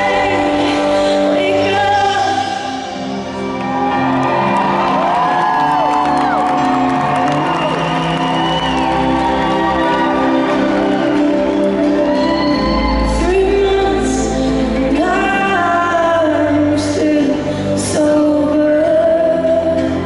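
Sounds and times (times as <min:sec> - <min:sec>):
woman singing: 0:00.0 - 0:03.2, 0:12.4 - 0:20.0
crowd whooping and screaming: 0:02.7 - 0:15.4.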